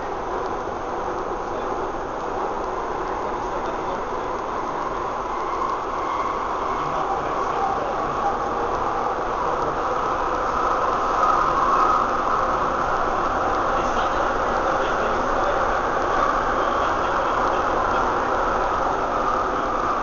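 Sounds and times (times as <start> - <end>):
train cabin rumble and hiss: 0.0 - 20.0.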